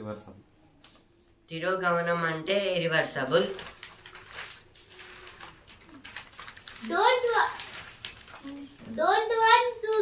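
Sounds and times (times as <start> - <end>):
newspaper pages rustling: 3.0 - 9.6.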